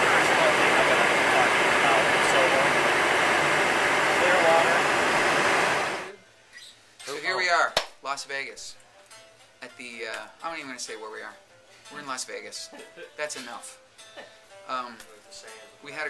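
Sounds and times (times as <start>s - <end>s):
small plane cabin engine noise: 0.0s - 6.2s.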